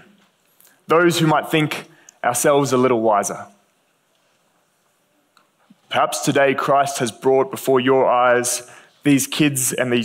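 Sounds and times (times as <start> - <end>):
man speaking: 0.8 - 3.6, 5.8 - 10.0.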